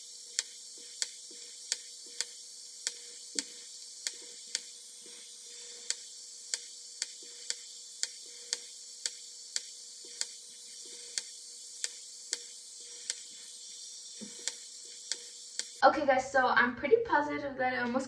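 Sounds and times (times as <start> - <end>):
faint steady hum: 0.0 - 16.8
sharp clicks of light pulses: 0.2 - 13.5, 14.1 - 15.8.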